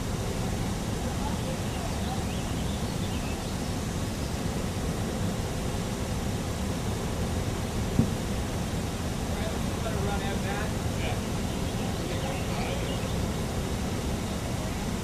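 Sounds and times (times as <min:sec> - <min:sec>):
faint distant voices: 0:00.0 - 0:05.3, 0:07.8 - 0:15.0
sharp knock: 0:08.0 - 0:08.2.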